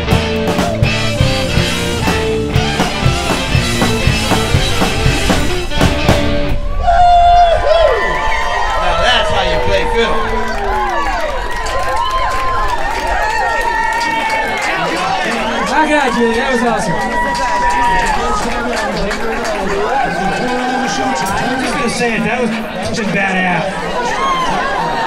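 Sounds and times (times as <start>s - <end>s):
country-rock band playing: 0.0s - 6.6s
audience cheering and whooping: 6.5s - 22.9s, 23.6s - 25.0s.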